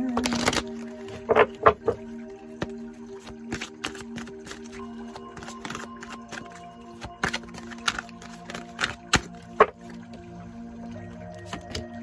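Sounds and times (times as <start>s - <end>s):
cards being shuffled: 0.0s - 2.0s, 2.6s - 9.9s, 11.4s - 12.0s
soft background music: 0.0s - 12.0s.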